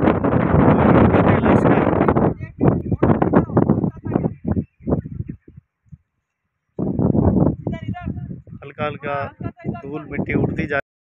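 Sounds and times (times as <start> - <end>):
wind blowing across microphone: 0.0 - 10.8.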